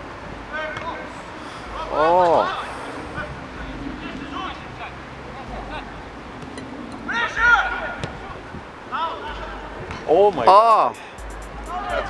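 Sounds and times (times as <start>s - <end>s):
outdoor background noise: 0.0s - 12.0s
people calling out: 11.6s - 12.0s.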